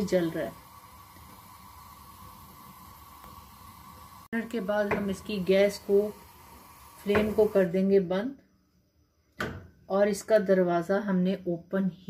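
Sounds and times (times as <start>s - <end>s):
gas burner flame hissing: 0.0s - 8.1s.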